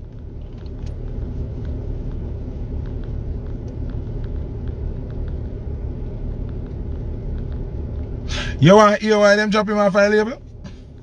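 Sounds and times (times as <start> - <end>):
faint ticks: 0.0 - 8.2
car idling: 0.0 - 11.0.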